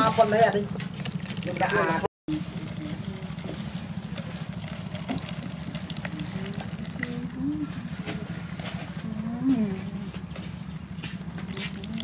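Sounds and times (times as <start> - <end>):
steady low hum: 0.4 - 12.0
liquid dribbling and splashing: 0.7 - 9.0, 10.6 - 12.0
faint drips: 0.8 - 9.0, 9.6 - 12.0.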